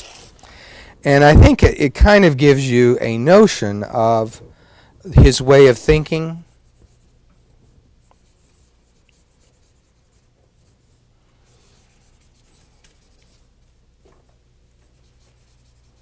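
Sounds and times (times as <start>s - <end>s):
low room hum: 0.0s - 16.0s
scratching of writing on board: 11.5s - 13.4s, 14.9s - 16.0s.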